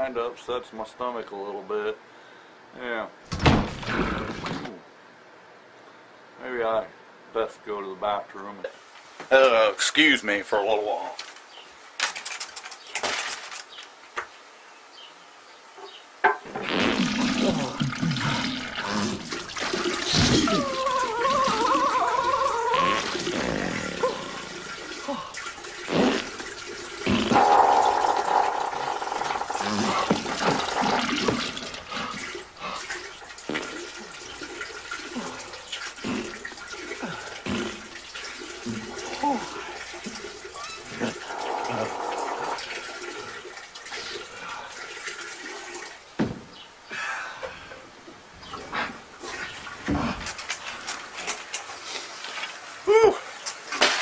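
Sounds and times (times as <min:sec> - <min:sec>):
water splashing and gurgling: 0:16.4 - 0:46.2
toilet flush rushing: 0:16.5 - 0:20.4, 0:22.6 - 0:46.0
man groaning: 0:20.2 - 0:25.3, 0:38.7 - 0:39.6.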